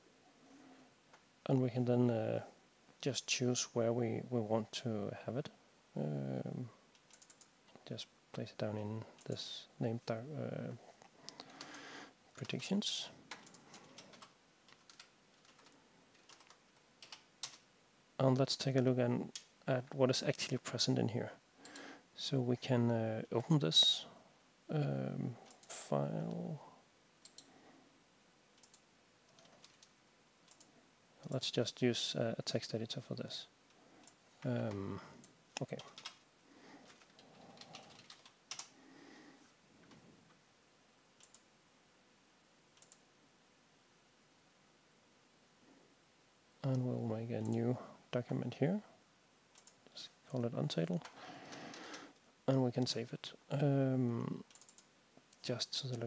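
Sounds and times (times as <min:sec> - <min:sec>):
computer keyboard keystrokes: 0:07.0 - 0:07.5, 0:13.3 - 0:17.6, 0:36.9 - 0:38.7, 0:54.5 - 0:54.9.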